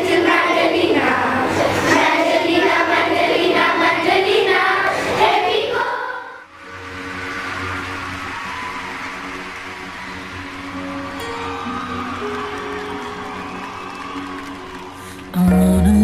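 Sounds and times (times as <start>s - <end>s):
girls singing together: 0.0s - 6.5s
soft background music: 5.6s - 16.0s.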